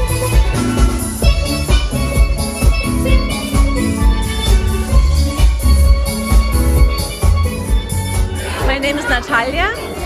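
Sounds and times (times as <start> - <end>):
bass drum beat: 0.0 - 10.0
live band dance music: 0.0 - 10.0.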